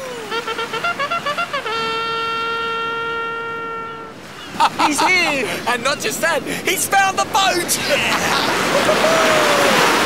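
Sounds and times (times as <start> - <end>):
horn-like fanfare: 0.3 - 4.2.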